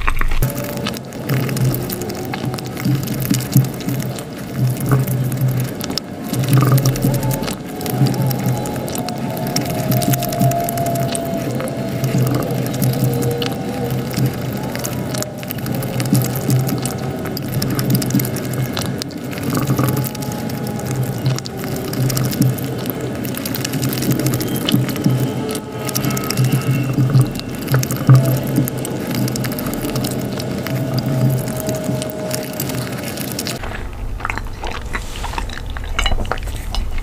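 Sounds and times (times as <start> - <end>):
wet chewing sounds: 0.0 - 37.0.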